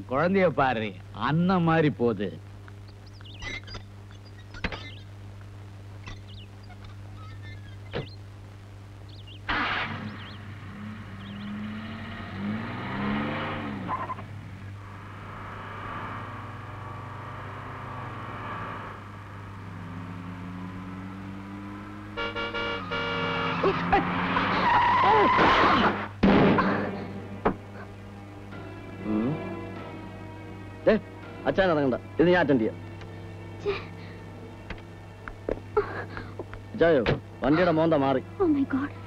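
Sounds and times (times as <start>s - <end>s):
car engine starting and revving: 9.5s - 35.2s.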